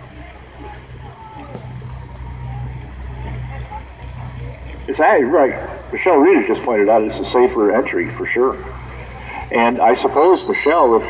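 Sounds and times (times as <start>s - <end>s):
faint indistinct voices: 0.0s - 11.0s
steady low hum: 0.0s - 11.0s.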